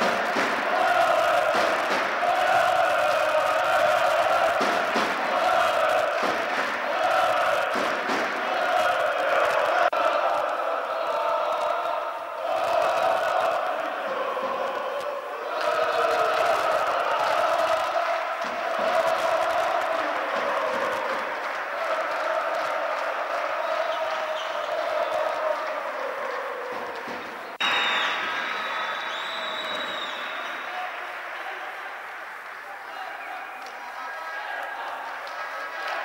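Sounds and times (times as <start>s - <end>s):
crowd chanting: 0.0s - 36.0s
crowd noise: 0.0s - 36.0s
short whistles: 27.5s - 30.7s.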